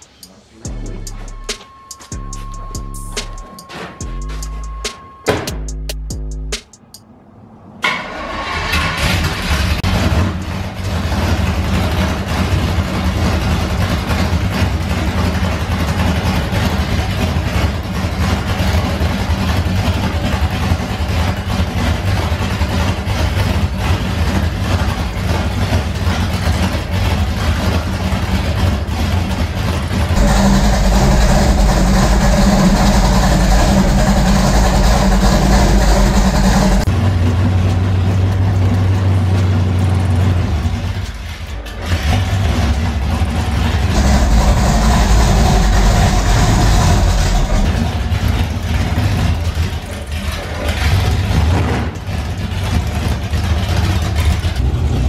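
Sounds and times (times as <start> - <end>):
pickup truck engine running: 0.0 - 6.9, 8.5 - 55.0.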